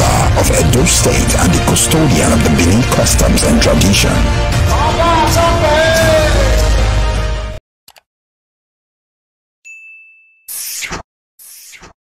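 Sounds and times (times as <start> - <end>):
bell-like notification ding: 9.7 - 10.5.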